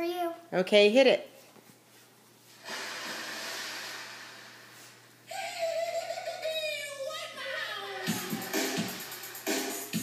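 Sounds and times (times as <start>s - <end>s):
long breathy hiss: 2.6s - 5.0s.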